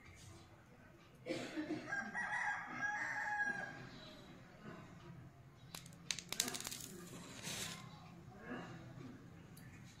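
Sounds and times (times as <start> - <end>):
rooster crowing: 1.9 - 3.8.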